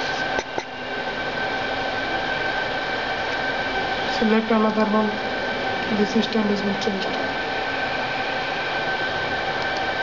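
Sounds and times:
constant whining tones: 0.0s - 10.0s
machine hum and hiss: 0.0s - 10.0s.

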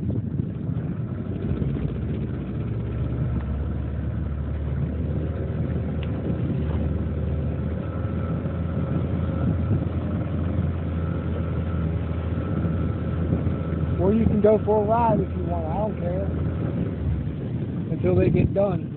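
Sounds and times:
outboard motor drone: 0.0s - 18.9s
faint high motor whine: 0.7s - 18.9s.

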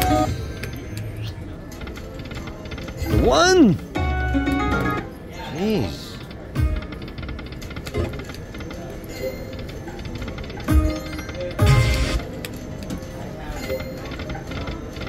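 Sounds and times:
slot machine game music and chimes: 0.0s - 1.0s, 8.0s - 12.5s.

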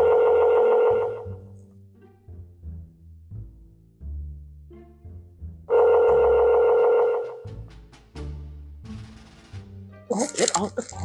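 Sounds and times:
telephone tone: 0.0s - 1.4s, 5.7s - 7.4s.

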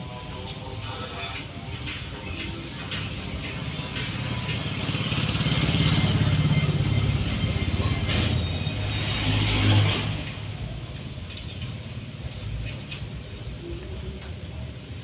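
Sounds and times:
vehicle engine passing by: 3.9s - 10.7s.

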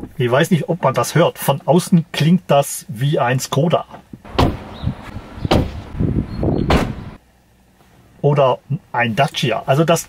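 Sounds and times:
car door shutting: 4.2s - 7.2s
car trunk lid shutting: 4.3s - 7.2s.

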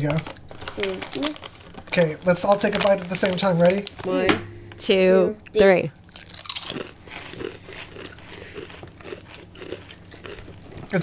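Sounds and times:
people crunching potato crisps: 0.0s - 4.1s, 6.1s - 11.0s.

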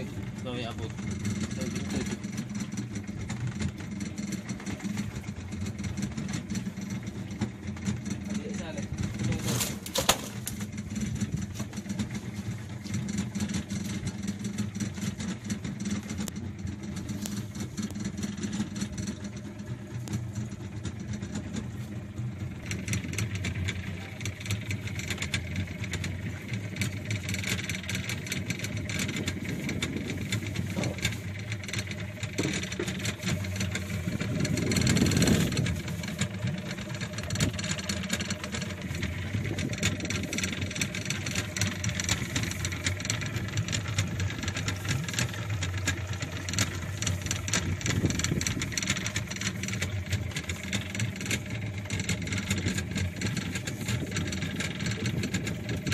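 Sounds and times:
boat engine humming: 0.0s - 55.9s.

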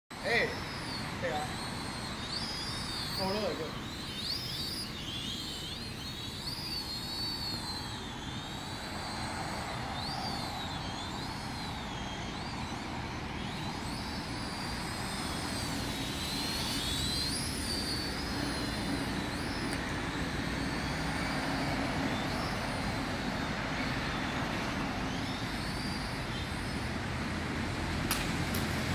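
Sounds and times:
steady background noise: 0.1s - 28.9s
toy drone high whine: 0.1s - 28.9s.

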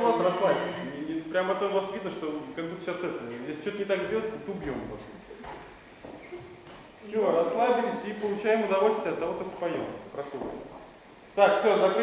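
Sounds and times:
faint low thuds: 4.1s - 7.0s.

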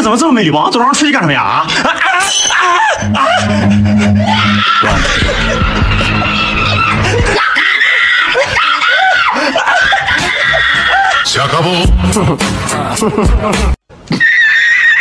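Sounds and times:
music with heavy bass: 3.0s - 7.4s, 11.8s - 13.8s
woman screaming: 4.2s - 11.2s, 14.1s - 15.0s.

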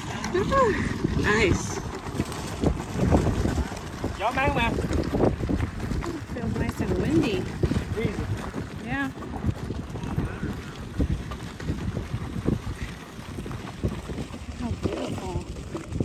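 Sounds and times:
wheels rumbling over gravel: 0.0s - 16.0s
wind buffeting microphone: 0.0s - 16.0s.

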